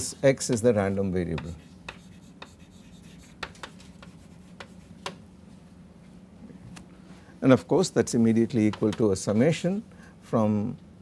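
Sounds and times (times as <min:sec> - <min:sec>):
steady low hum: 0:00.0 - 0:11.0
chalk tapping on blackboard: 0:00.4 - 0:05.2.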